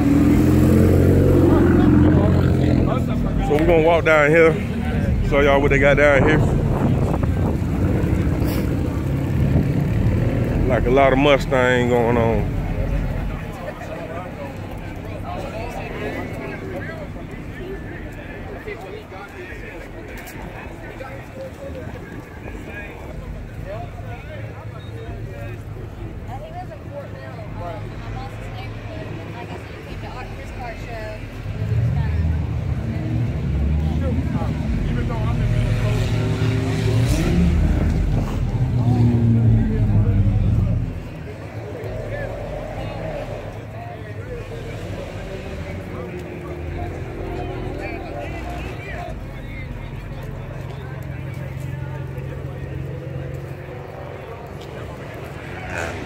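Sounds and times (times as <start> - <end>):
car engine revving: 0.0 - 18.8, 27.6 - 56.0
people chattering: 0.0 - 56.0.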